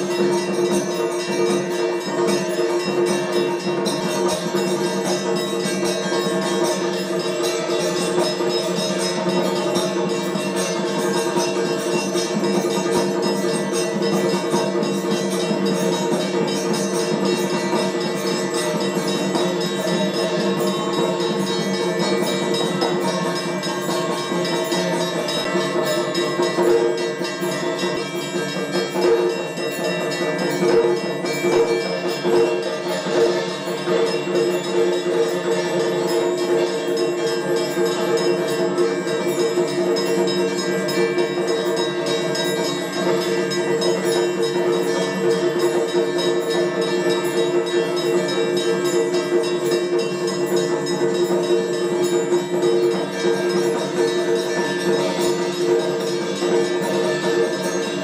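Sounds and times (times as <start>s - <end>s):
bells ringing together: 0.0s - 58.0s.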